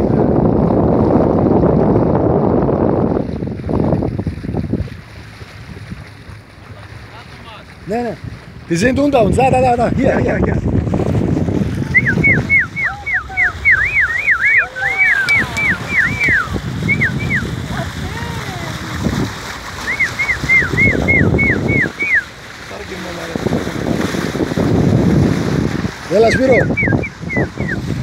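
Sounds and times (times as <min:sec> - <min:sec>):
water rushing along boat hull: 0:00.0 - 0:28.0
person whistling: 0:11.8 - 0:17.5, 0:19.8 - 0:22.3, 0:26.4 - 0:27.8.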